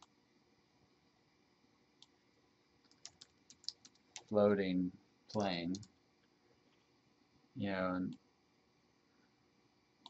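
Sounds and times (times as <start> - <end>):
computer keyboard typing: 2.9 - 4.4, 5.3 - 5.9.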